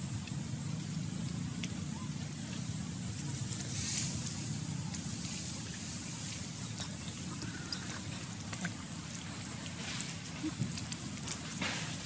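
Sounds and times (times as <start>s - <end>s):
shallow water splashing: 1.4s - 12.0s.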